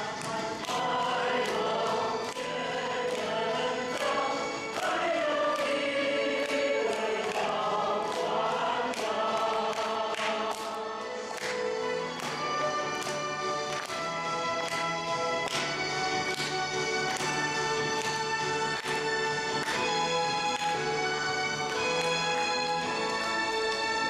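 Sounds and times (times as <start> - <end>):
instrumental accompaniment: 0.0 - 24.0.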